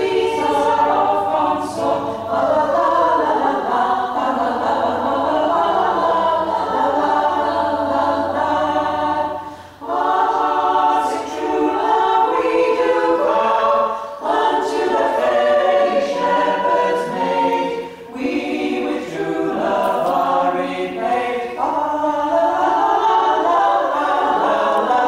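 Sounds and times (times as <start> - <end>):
women's choir singing a cappella: 0.0 - 25.0.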